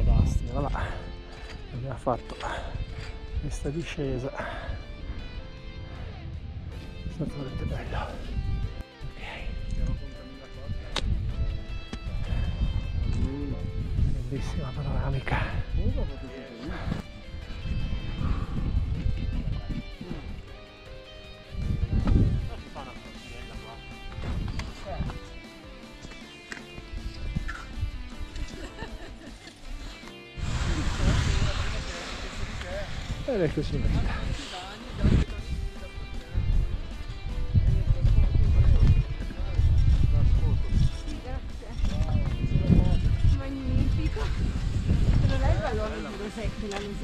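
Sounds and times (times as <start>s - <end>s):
wind buffeting microphone: 0.0s - 1.0s, 2.5s - 20.5s, 21.5s - 22.8s, 30.4s - 47.0s
background music: 0.0s - 47.0s
people talking: 45.2s - 47.0s.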